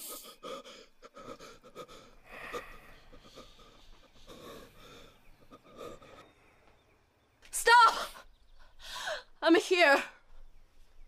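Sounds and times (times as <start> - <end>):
man gasping and breathing hard: 0.0 - 6.2.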